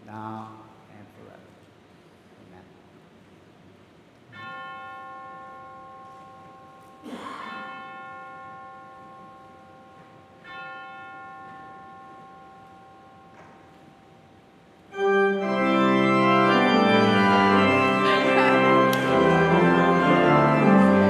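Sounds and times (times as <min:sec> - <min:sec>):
bell ringing: 0:04.4 - 0:21.0.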